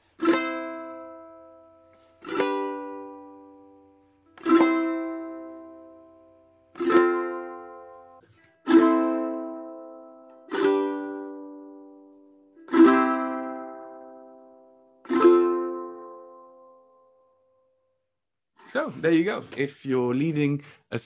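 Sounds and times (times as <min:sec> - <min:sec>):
ukulele chords strummed: 0:00.0 - 0:17.4.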